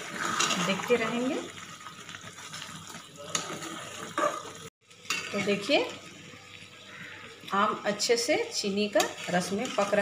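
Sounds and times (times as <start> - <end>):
syrup bubbling and sizzling: 0.0 - 10.0.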